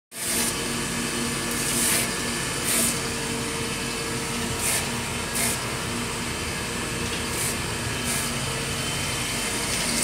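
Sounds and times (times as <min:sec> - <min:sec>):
grinder motor hum: 0:00.1 - 0:10.0.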